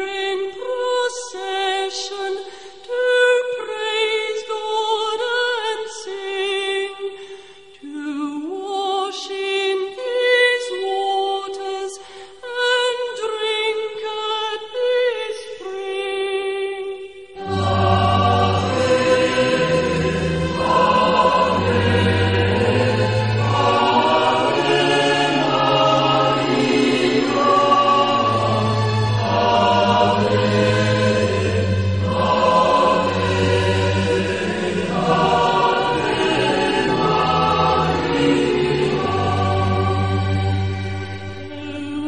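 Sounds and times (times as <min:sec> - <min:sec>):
choir singing sacred music: 0:00.0 - 0:12.0, 0:14.7 - 0:42.0.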